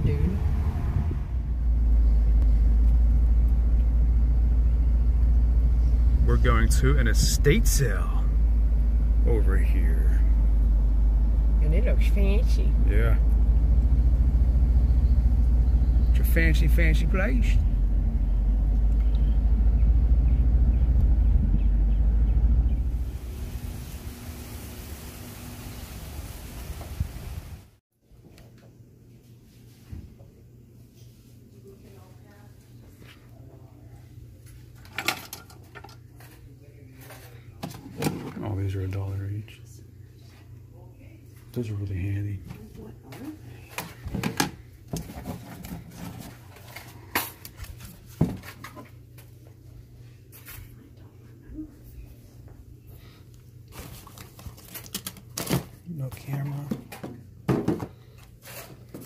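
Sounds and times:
car interior road and engine rumble: 0.0s - 26.2s.

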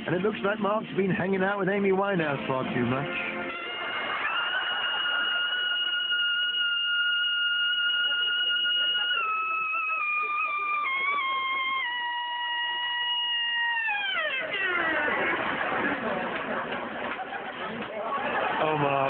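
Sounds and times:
trumpet note sliding down: 6.6s - 15.6s.

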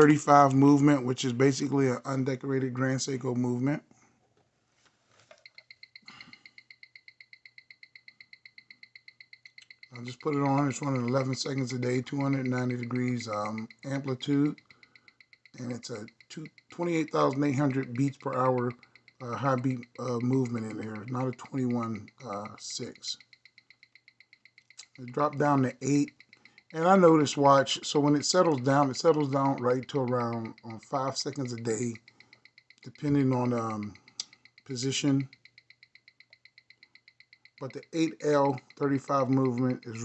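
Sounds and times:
watch ticking: 0.0s - 4.1s, 5.3s - 40.0s.

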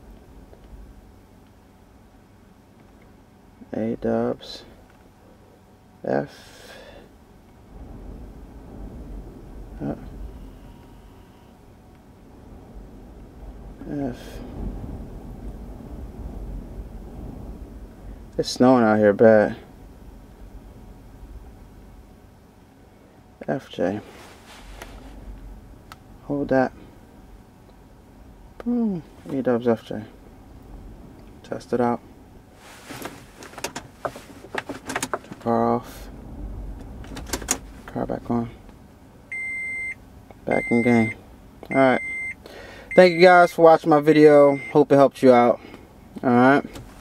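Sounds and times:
car cabin rumble: 0.0s - 5.2s, 7.1s - 22.8s, 23.5s - 42.3s, 46.0s - 47.0s
soft rushing noise: 6.3s - 39.0s
car controls clicking: 33.0s - 35.4s.

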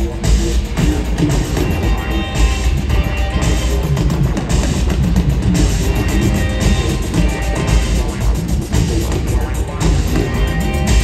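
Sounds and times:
drum beat: 0.0s - 11.0s
heavy bass: 0.0s - 11.0s
electric guitar riff: 1.6s - 4.6s, 5.4s - 8.1s.

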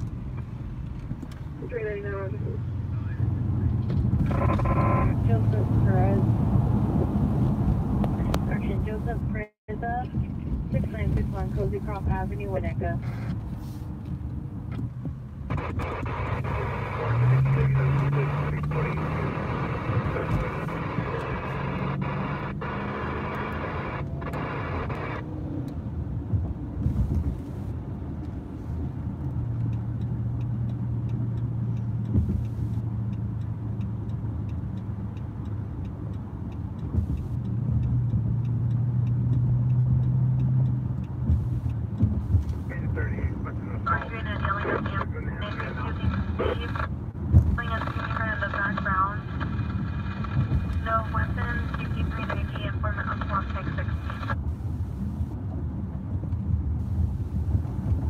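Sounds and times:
road rumble: 0.0s - 58.0s
radio scanner voice transmission: 4.2s - 6.2s, 8.2s - 13.3s, 15.5s - 25.2s, 42.7s - 46.9s, 47.5s - 54.4s
low engine drone: 15.2s - 58.0s.

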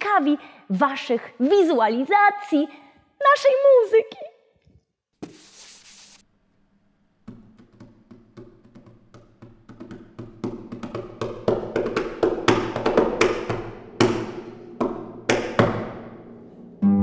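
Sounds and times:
concert harp playing: 16.6s - 17.0s.

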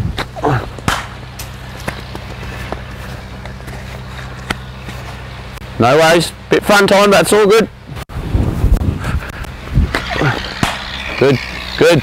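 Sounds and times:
ball hitting bat: 0.2s - 2.0s, 9.9s - 11.0s
cricket ball hitting turf: 0.2s - 3.8s, 4.4s - 5.0s, 9.9s - 10.9s.

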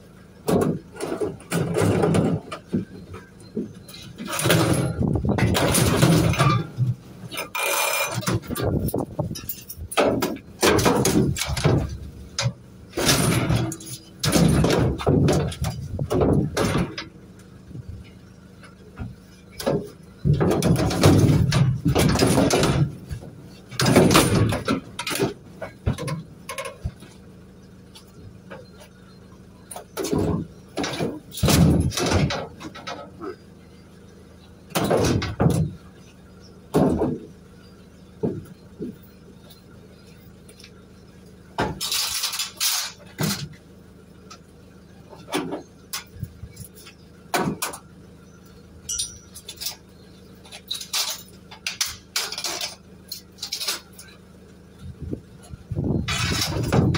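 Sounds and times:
scrap clattering in metal van bay: 0.0s - 56.9s.

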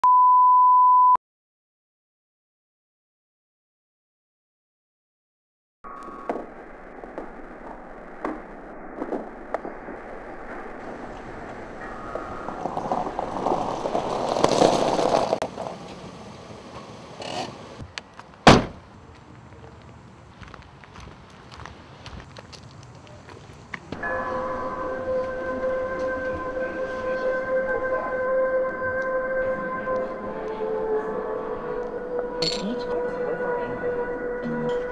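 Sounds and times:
steady electronic drone: 24.0s - 34.9s.

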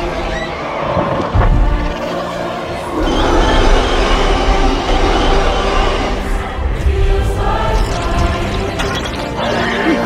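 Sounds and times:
rushing roar with deep rumble: 0.0s - 8.5s
buried song music: 0.0s - 10.0s.

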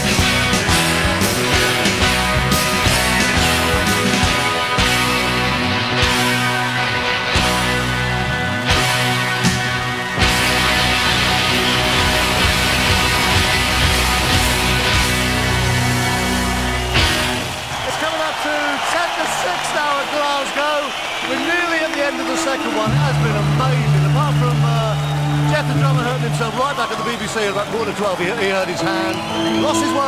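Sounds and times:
music of long held chords: 0.0s - 17.6s
rock band playing loudly: 0.0s - 20.3s, 21.0s - 30.0s
voices: 17.8s - 30.0s.

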